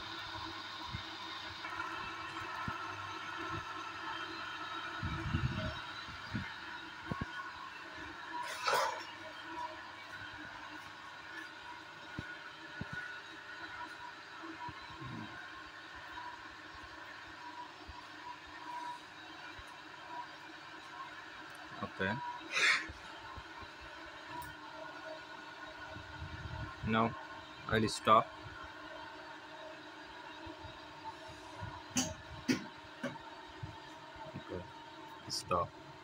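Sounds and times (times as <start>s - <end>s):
electric motor humming and whining: 0.0s - 19.9s.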